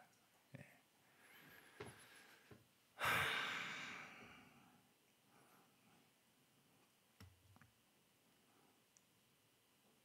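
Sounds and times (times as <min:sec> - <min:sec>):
man sighing: 0:03.0 - 0:04.4.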